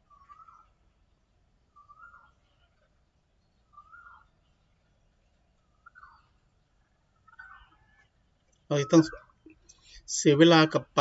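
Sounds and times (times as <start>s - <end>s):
faint falling bird calls: 0.0s - 1.0s, 1.7s - 3.0s, 3.6s - 4.6s.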